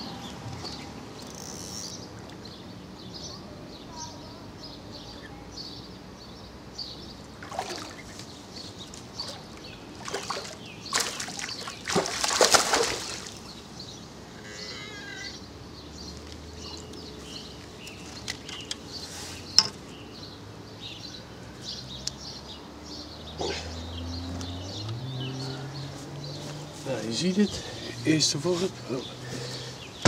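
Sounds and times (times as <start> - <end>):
fish splashing in water: 7.4 - 8.3, 9.1 - 13.5.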